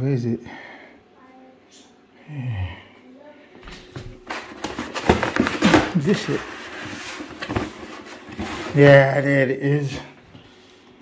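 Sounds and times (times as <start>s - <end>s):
cardboard boxes rustling and scraping: 4.2s - 9.4s.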